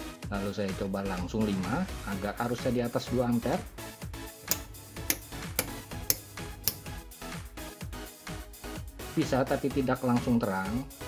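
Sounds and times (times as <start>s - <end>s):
background music: 0.0s - 11.0s
rocker switches clicking: 4.5s - 7.0s.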